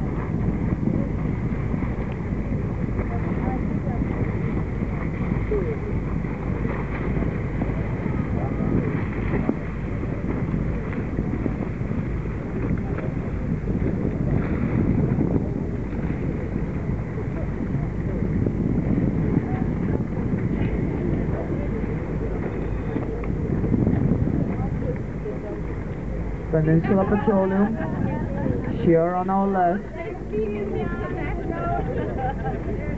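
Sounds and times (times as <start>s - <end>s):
wind buffeting microphone: 0.0s - 32.9s.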